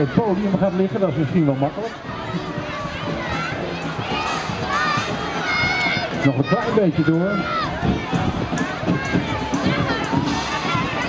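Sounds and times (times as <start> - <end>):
crowd calling and shouting: 0.0 - 11.0.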